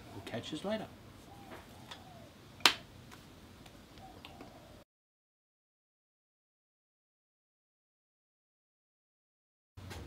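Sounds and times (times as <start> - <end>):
sharp snap: 2.6 - 2.9.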